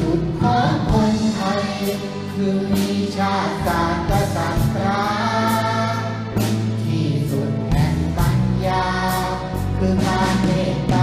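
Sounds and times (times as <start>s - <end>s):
man singing: 0.0s - 11.0s.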